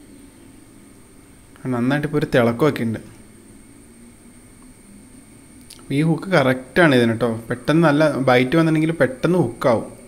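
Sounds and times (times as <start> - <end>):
faint hum: 0.0 - 10.0
low background hiss: 0.0 - 10.0.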